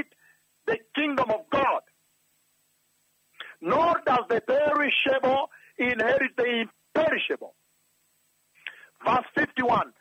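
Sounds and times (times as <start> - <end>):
person speaking: 0.0 - 1.9, 3.4 - 7.6, 8.6 - 10.0.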